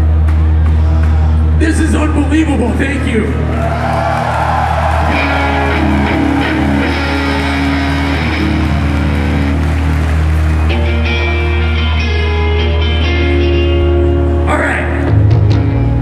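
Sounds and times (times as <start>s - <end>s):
electric guitars: 3.5s - 16.0s.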